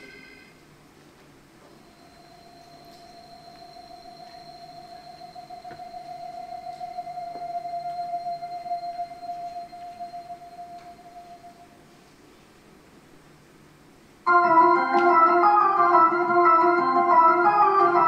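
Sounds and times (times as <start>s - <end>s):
held electronic keyboard note: 1.8s - 11.8s, 14.3s - 18.0s.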